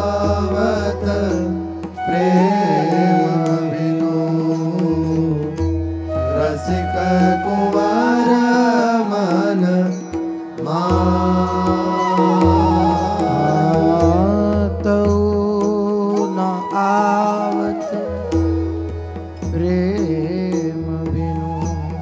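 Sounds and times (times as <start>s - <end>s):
person singing devotional chant: 0.0s - 18.6s, 19.4s - 22.0s.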